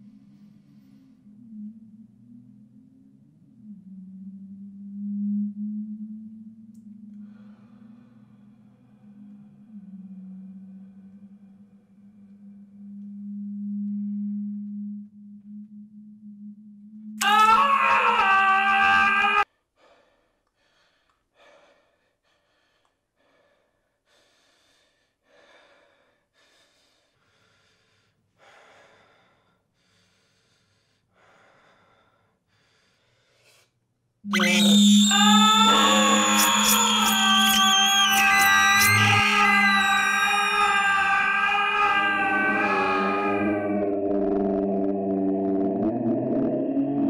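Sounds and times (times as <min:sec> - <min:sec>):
steady low drone: 0:00.0 - 0:17.2, 0:34.3 - 0:47.0
loud wavering cry: 0:17.2 - 0:19.4, 0:34.3 - 0:47.0.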